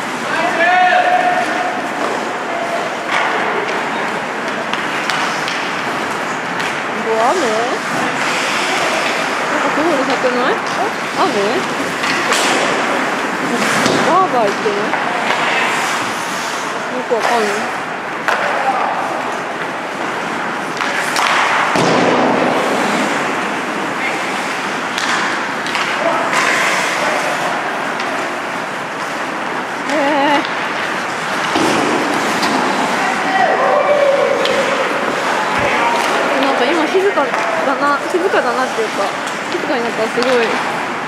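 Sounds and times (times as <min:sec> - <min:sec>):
rush of rink noise: 0:00.0 - 0:41.0
hockey sticks and puck clicking: 0:03.0 - 0:07.0, 0:07.8 - 0:16.6, 0:17.2 - 0:23.5, 0:24.1 - 0:33.0, 0:34.3 - 0:40.9
hockey stick knocking puck: 0:04.5 - 0:06.8, 0:11.9 - 0:13.0, 0:18.2 - 0:23.4, 0:24.9 - 0:26.7, 0:39.2 - 0:40.7
skates hissing on ice: 0:07.8 - 0:09.2, 0:15.3 - 0:17.8.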